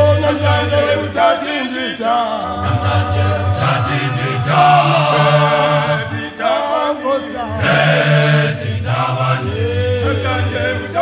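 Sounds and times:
male choir singing: 0:00.0 - 0:11.0.

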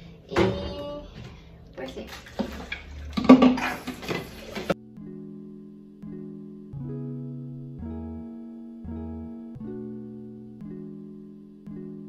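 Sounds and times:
plastic bottles and dishes clattering: 0:02.0 - 0:04.8
background music with held notes: 0:03.2 - 0:12.0.

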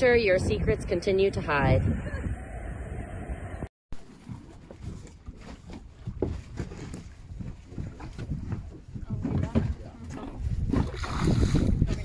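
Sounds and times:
wind on microphone: 0:00.0 - 0:12.0
water splashing against boat: 0:04.0 - 0:12.0
fish thrashing in water: 0:04.4 - 0:12.0.

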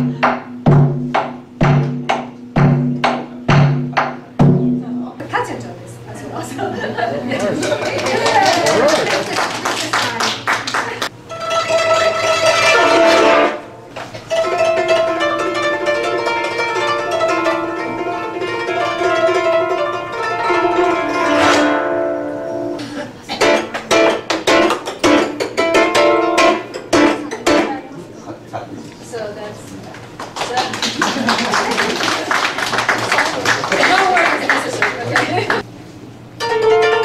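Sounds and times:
koto plucked notes: 0:00.0 - 0:05.2, 0:11.2 - 0:22.8, 0:23.4 - 0:27.9, 0:36.4 - 0:37.0.

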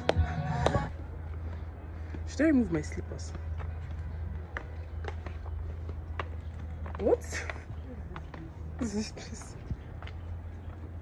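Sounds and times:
footsteps in slippers on rock path: 0:00.0 - 0:11.0.

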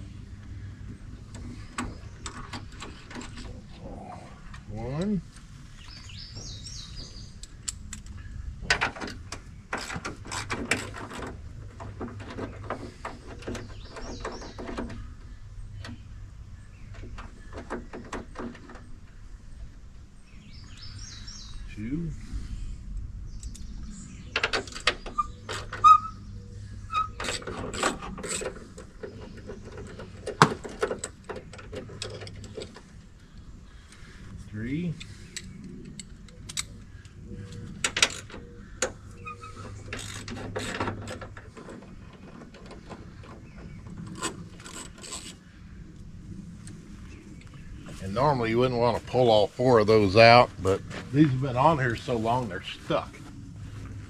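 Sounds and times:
hand tools and metal parts rattling: 0:00.8 - 0:03.7, 0:05.8 - 0:16.0, 0:24.3 - 0:33.2, 0:35.0 - 0:45.5.

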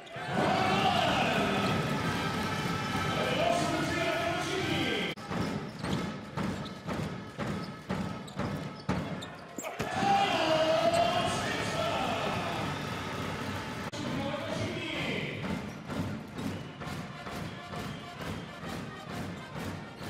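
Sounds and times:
crowd voices: 0:00.0 - 0:05.2, 0:08.8 - 0:14.8
basketball dribbling on indoor court: 0:01.6 - 0:09.6, 0:15.0 - 0:20.0.

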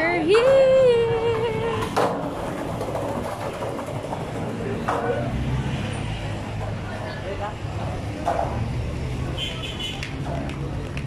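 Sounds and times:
passersby voices: 0:00.0 - 0:11.0
traffic rumble: 0:00.0 - 0:11.0.

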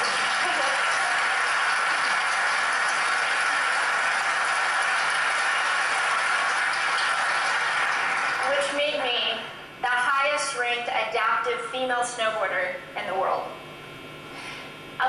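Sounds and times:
audience applauding: 0:00.0 - 0:08.9.

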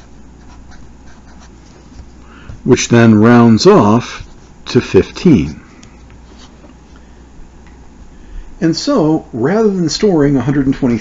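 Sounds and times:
marker scratching on paper: 0:00.0 - 0:02.2
low room hum: 0:00.0 - 0:11.0.

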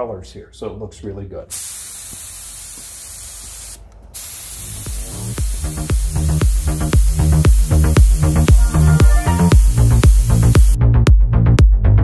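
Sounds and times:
paint spray gun hissing: 0:01.5 - 0:10.8
electronic music with a beat: 0:04.9 - 0:12.0.

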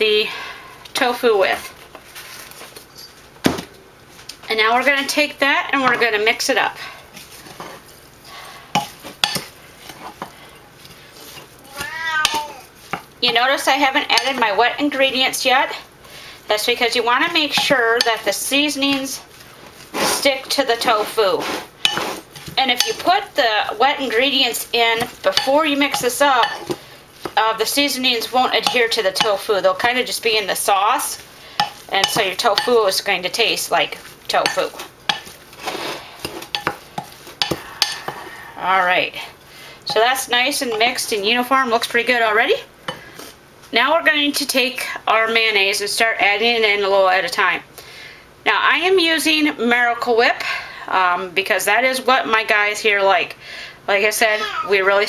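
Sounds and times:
cat meowing: 0:11.7 - 0:12.7
spoon stirring in glass bowl: 0:21.8 - 0:23.3, 0:24.0 - 0:38.3.

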